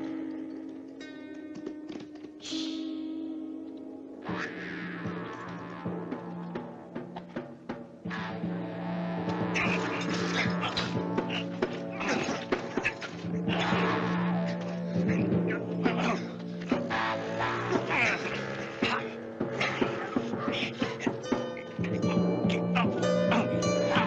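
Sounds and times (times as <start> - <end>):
western film score music: 0.0 - 24.0.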